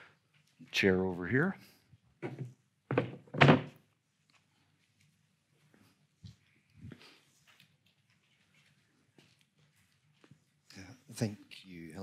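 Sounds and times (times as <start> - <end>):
chair thunking on stage floor: 2.2 - 3.8.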